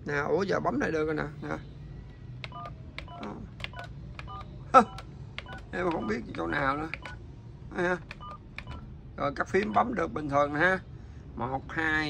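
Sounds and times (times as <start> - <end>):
fax phone keypad presses: 2.4 - 7.2, 8.0 - 8.9, 9.6 - 9.9
two-tone touch-tone beeps: 2.5 - 7.2, 8.2 - 8.8.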